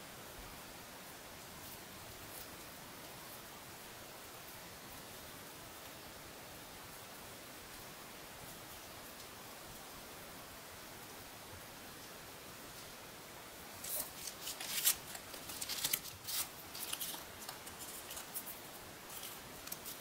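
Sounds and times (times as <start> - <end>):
faint steady hiss: 0.0 - 20.0
cardstock paper rustling: 13.8 - 20.0.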